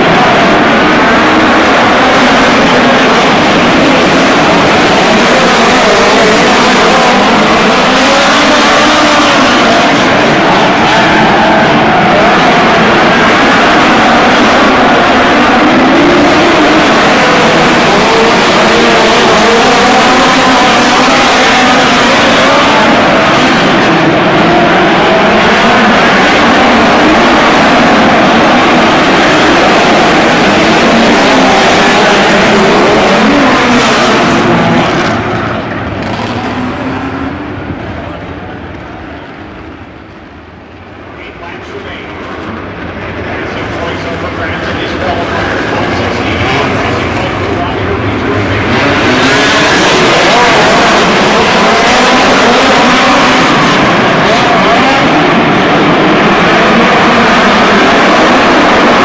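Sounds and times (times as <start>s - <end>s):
race car engines running hard: 0.0s - 59.0s.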